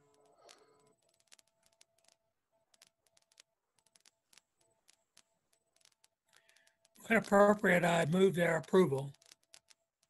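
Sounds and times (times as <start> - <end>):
faint clicks: 0.0 - 7.6.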